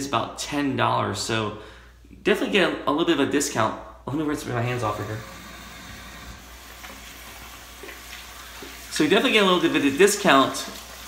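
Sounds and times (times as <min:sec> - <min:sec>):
water running from sink tap: 0:04.7 - 0:11.0
hands being rinsed: 0:04.8 - 0:11.0.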